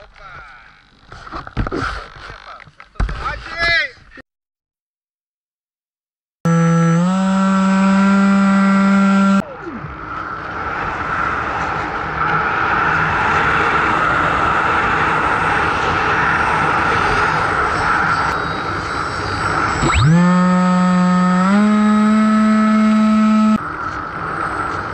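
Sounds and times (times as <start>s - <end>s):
electric motor whine: 6.5s - 9.4s, 19.7s - 23.6s.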